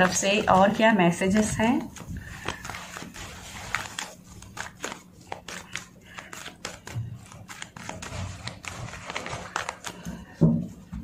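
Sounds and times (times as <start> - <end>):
cards being shuffled: 0.0 - 10.4.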